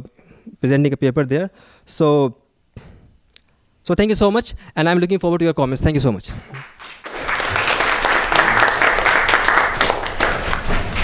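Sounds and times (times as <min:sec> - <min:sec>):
audience applauding: 0:06.5 - 0:10.9.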